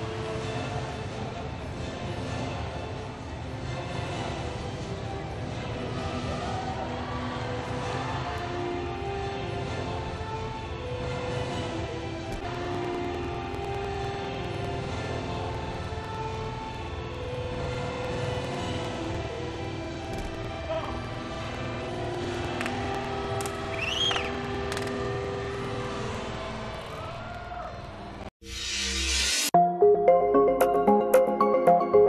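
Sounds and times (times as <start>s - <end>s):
music over arena sound system: 28.7s - 32.0s.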